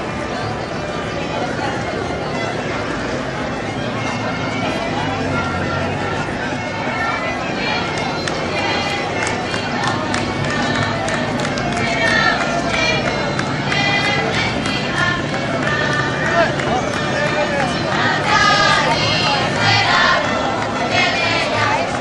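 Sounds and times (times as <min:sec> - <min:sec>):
crowd chatter: 0:00.0 - 0:22.0
fiddles playing: 0:00.0 - 0:22.0
voices singing: 0:00.0 - 0:22.0.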